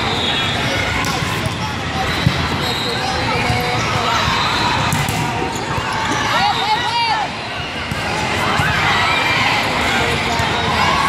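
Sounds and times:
balls struck and bouncing: 4.8 - 6.2.

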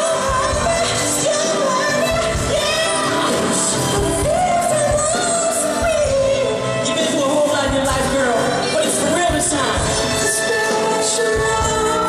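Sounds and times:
live band with keyboard: 0.0 - 12.0.

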